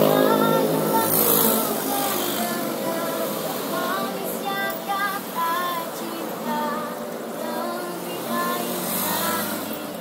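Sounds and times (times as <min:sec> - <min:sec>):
person singing: 0:00.0 - 0:10.0
vehicle engine passing: 0:00.0 - 0:10.0.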